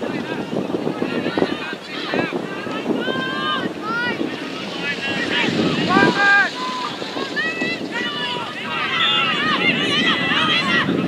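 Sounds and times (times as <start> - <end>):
wind rumbling on microphone: 0.0 - 11.0
young voices shouting: 0.9 - 11.0.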